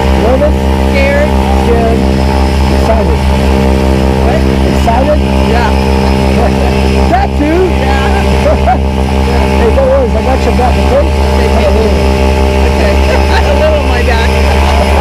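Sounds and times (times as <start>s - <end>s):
loud engine drone: 0.0s - 15.0s
voices: 0.0s - 15.0s
people laughing: 8.0s - 9.8s, 12.7s - 15.0s.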